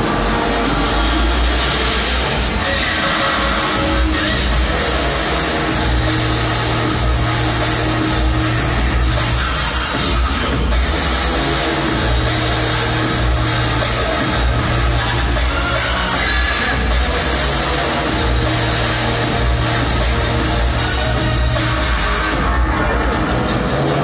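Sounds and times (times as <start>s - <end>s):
electronic music over loudspeakers: 0.0s - 24.0s.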